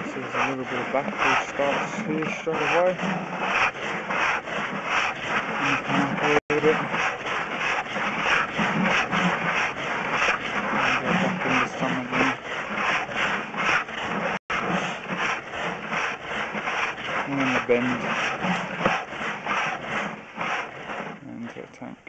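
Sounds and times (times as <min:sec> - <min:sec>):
rhythmic rubbing of rod in pipe: 0:00.0 - 0:21.3.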